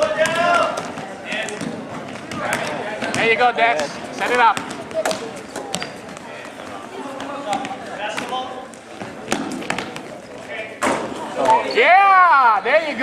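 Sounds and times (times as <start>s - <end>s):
faint chatter of spectators: 0.0s - 13.0s
basketball bouncing on hardwood floor: 0.2s - 6.3s.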